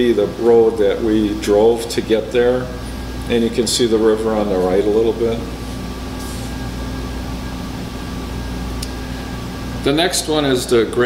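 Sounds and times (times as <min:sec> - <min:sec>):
ventilation hum and hiss: 0:00.0 - 0:11.0.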